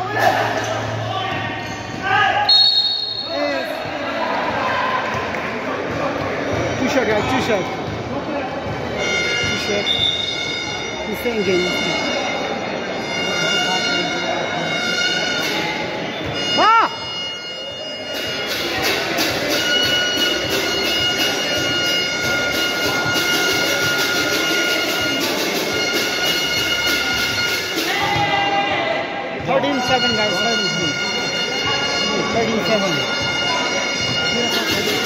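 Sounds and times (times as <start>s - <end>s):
bagpipe-like drone: 19.5s - 28.0s, 29.6s - 35.0s.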